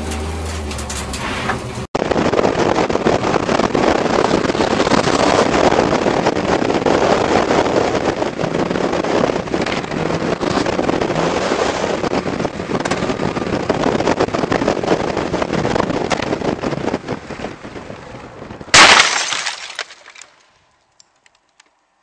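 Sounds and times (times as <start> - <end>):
vehicle engine and road noise: 0.0 - 22.0
loud vehicle crash: 18.7 - 20.4.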